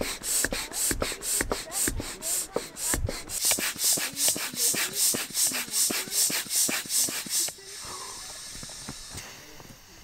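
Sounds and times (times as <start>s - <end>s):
hand air pump whooshing: 0.0s - 9.3s.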